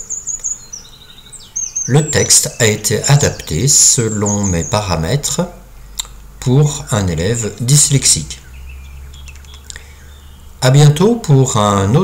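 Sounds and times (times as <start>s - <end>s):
faint high bird chirps: 0.0s - 11.6s.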